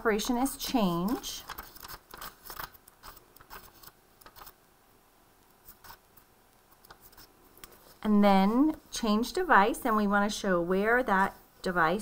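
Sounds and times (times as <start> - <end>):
book pages flipping: 0.8 - 4.6, 5.5 - 8.8.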